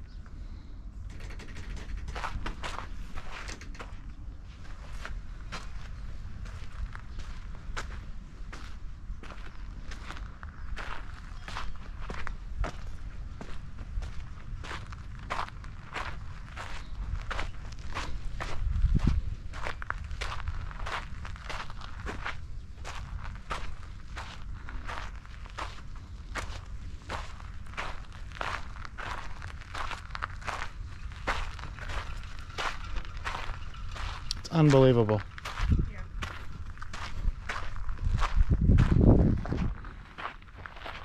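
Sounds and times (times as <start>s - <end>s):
footsteps on sandy dirt: 2.1s - 41.0s.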